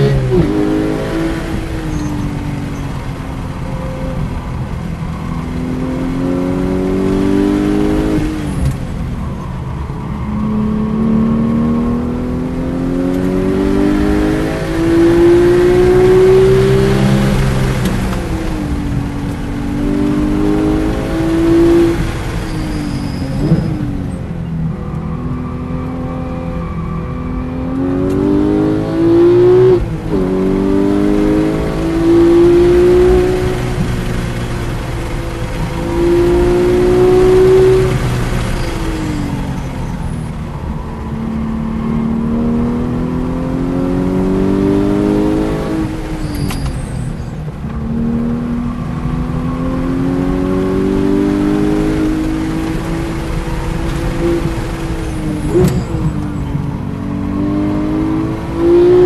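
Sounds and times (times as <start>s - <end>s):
car engine accelerating from inside cabin: 0.0s - 8.8s, 10.1s - 22.5s, 24.8s - 59.0s.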